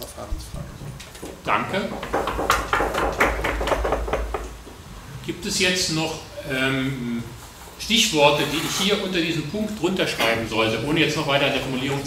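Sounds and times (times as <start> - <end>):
clicks and knocks: 1.2 - 4.8.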